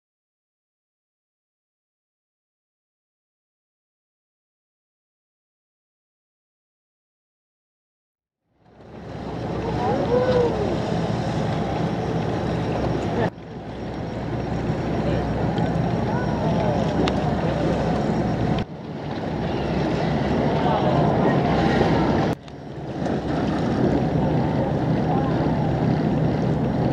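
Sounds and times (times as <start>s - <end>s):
wind: 8.4s - 26.9s
boat engine running: 8.5s - 26.9s
water noise: 8.5s - 26.9s.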